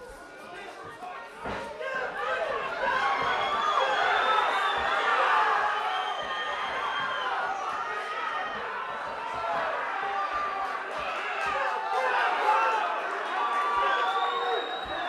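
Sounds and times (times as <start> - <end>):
crowd shouting and cheering: 0.0 - 15.0.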